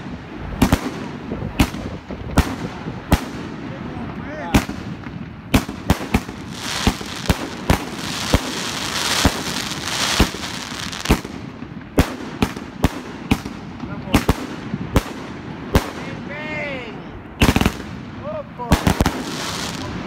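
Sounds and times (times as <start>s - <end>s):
crackling fireworks stars: 0.0s - 20.0s
fireworks launch and burst reports: 0.0s - 20.0s.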